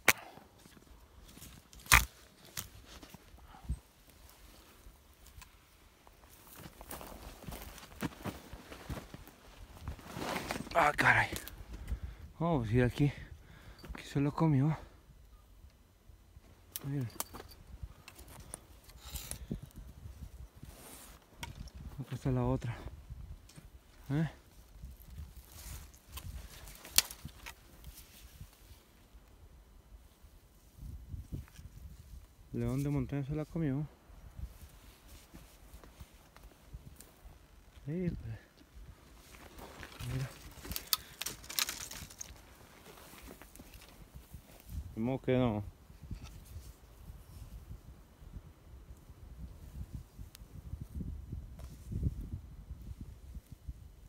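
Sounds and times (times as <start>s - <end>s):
dry branches snapping and rustling: 0.0s - 3.2s, 9.9s - 11.6s, 24.6s - 28.6s, 39.2s - 44.8s.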